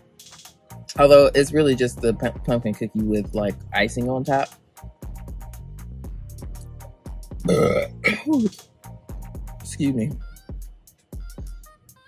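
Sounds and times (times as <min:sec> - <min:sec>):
woman burping: 0:07.5 - 0:08.4.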